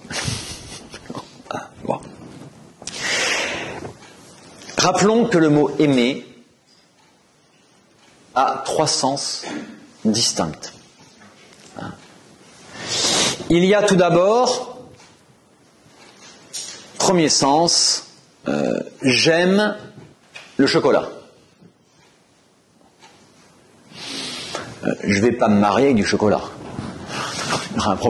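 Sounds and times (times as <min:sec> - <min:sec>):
man breathing in: 0:02.9 - 0:03.8.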